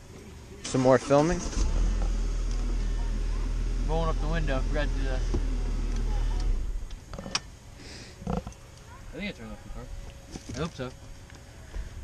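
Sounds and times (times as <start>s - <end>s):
car engine idling: 0.7s - 7.8s.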